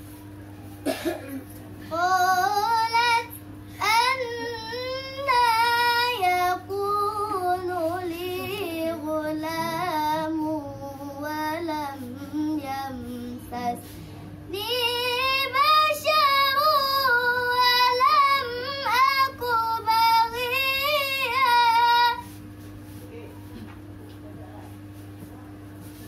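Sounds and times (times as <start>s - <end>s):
steady low hum: 0.0s - 26.0s
girl chanting melodically: 1.9s - 13.8s, 14.5s - 22.2s.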